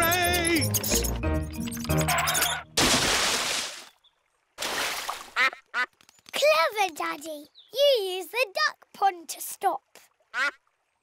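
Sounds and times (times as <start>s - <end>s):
cartoon water splash: 1.8s - 3.9s, 4.6s - 5.6s
weaker wash of water: 2.8s - 4.0s, 4.6s - 5.4s.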